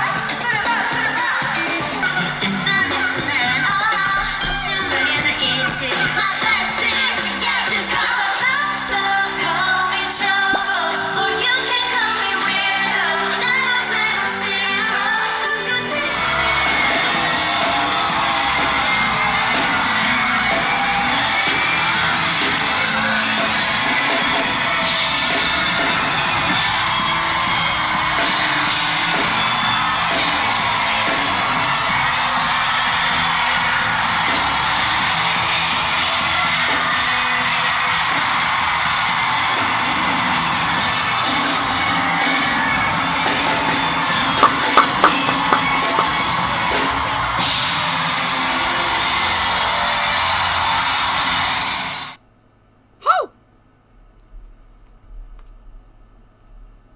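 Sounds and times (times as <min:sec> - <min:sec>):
pop music: 0:00.0 - 0:23.1, 0:44.4 - 0:46.3
crowd cheering and screaming: 0:00.0 - 0:52.2.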